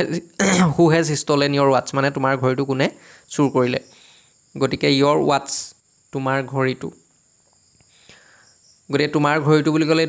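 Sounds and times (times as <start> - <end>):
man speaking: 0.0 - 3.9, 4.6 - 7.0, 8.9 - 10.0.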